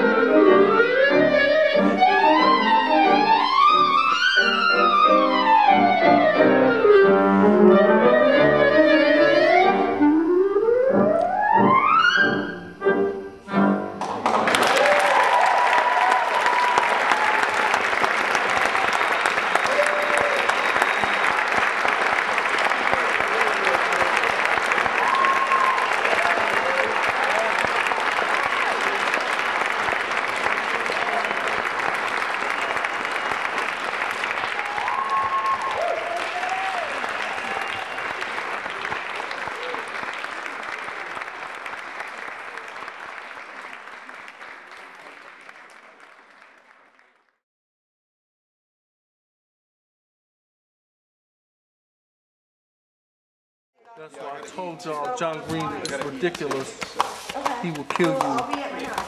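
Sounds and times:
audience applauding: 0:00.0 - 0:06.1, 0:14.0 - 0:47.4, 0:53.9 - 0:59.0
music: 0:00.0 - 0:14.4.

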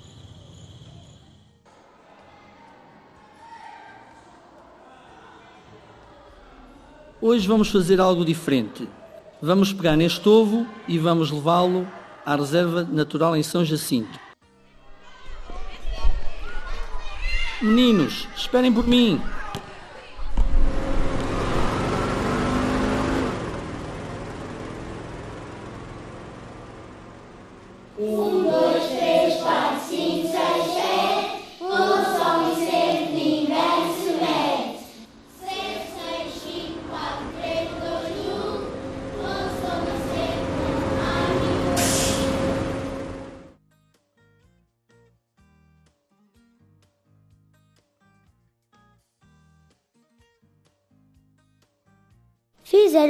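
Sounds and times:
bus engine pulling away: 0:20.4 - 0:43.6
short hiss: 0:41.8 - 0:42.6.

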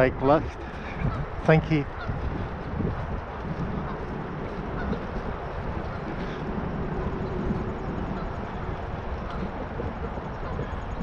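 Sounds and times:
bicycle tyre noise: 0:00.0 - 0:11.0
wind rumble on microphone: 0:00.0 - 0:11.0.

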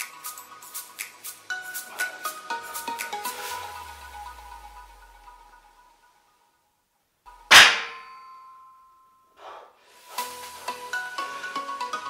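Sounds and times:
barbell clanging against metal rack: 0:07.5 - 0:08.2.

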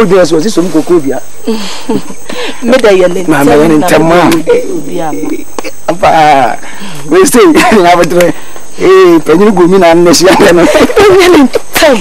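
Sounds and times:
faint steady hiss: 0:00.0 - 0:12.0
person talking: 0:02.0 - 0:12.0.

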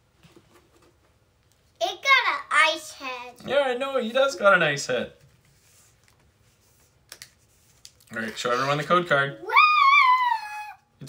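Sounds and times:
cards clicking on playmat: 0:07.1 - 0:08.4.

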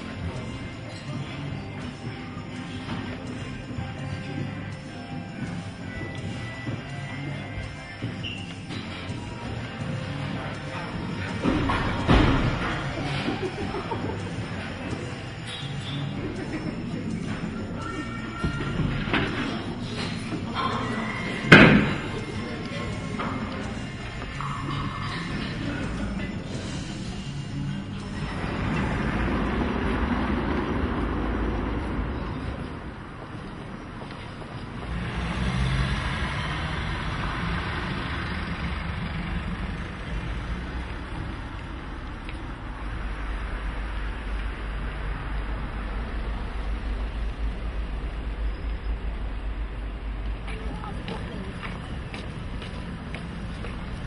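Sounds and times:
city traffic rumble: 0:00.0 - 0:54.0.

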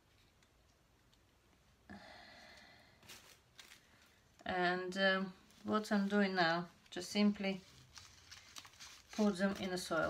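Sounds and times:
faint rustle: 0:02.6 - 0:04.5, 0:05.3 - 0:10.0.

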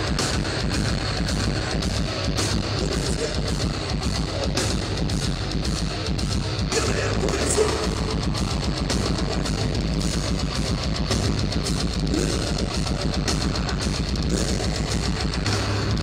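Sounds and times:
distorted electric guitars: 0:00.0 - 0:16.0
fast dense drumming: 0:00.0 - 0:16.0.

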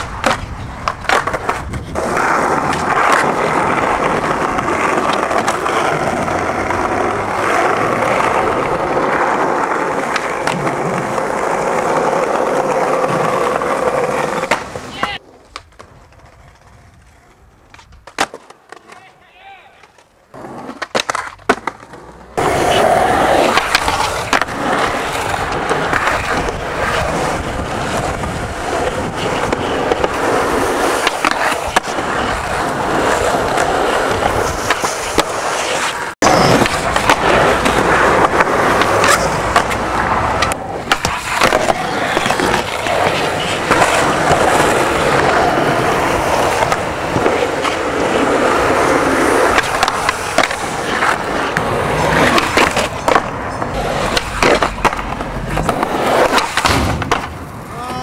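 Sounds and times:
skateboard wheels rolling on concrete: 0:00.0 - 0:58.0.

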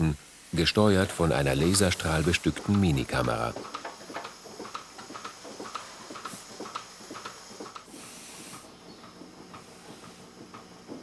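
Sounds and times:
milking machine hiss: 0:00.0 - 0:11.0
milking machine clicks and ticks: 0:01.2 - 0:07.9, 0:08.5 - 0:11.0.

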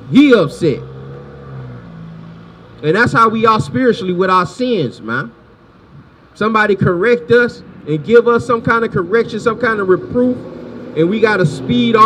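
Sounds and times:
car engine pulling away: 0:00.0 - 0:03.3, 0:09.5 - 0:12.0
speech: 0:00.1 - 0:00.8, 0:02.8 - 0:05.4, 0:06.4 - 0:10.4, 0:11.0 - 0:12.0.

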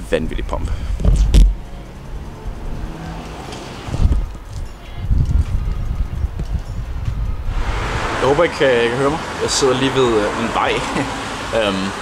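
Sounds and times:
road traffic passing: 0:00.0 - 0:12.0
wind rumble on microphone: 0:00.7 - 0:01.6, 0:03.8 - 0:09.3
heavy low thump: 0:00.9 - 0:01.6.

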